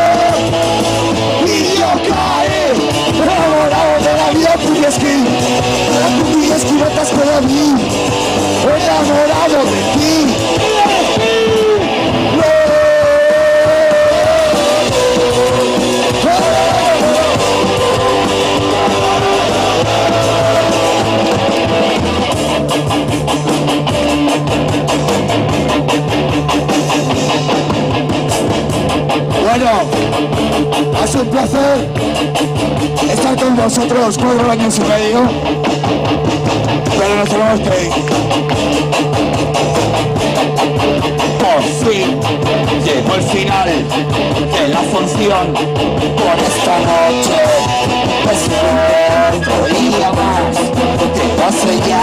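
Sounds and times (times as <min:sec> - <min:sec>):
bass and drums: 0:00.0 - 0:52.0
electric guitar: 0:00.0 - 0:52.0
punk rock band playing: 0:00.0 - 0:52.0
voices singing: 0:08.6 - 0:22.3, 0:44.5 - 0:52.0.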